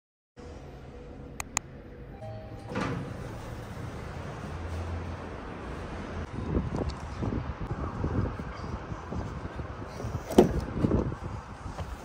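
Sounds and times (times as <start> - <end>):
lift doors sliding open: 2.2 - 5.6.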